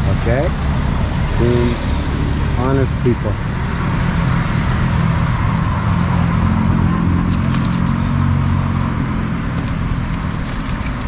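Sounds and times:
car engine running: 0:00.0 - 0:11.0
road traffic: 0:00.0 - 0:11.0.

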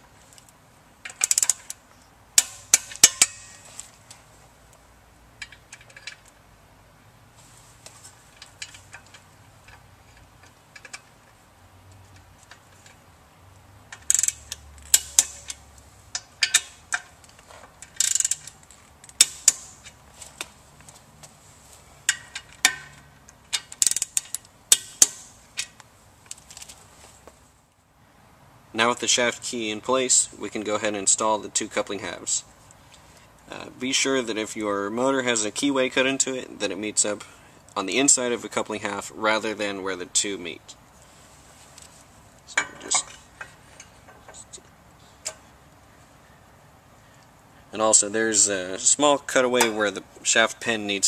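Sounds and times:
ratchet torque wrench clicking: 0:01.1 - 0:01.8, 0:13.9 - 0:17.0, 0:17.8 - 0:18.6, 0:23.5 - 0:25.7.

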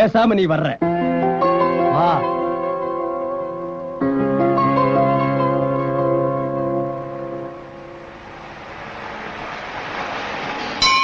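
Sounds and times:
music: 0:00.0 - 0:08.4, 0:10.5 - 0:11.0
road vehicle approaching: 0:04.4 - 0:11.0.

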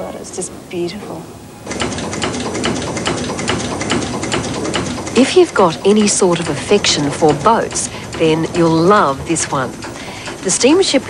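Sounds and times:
steam engine clattering: 0:01.7 - 0:11.0.

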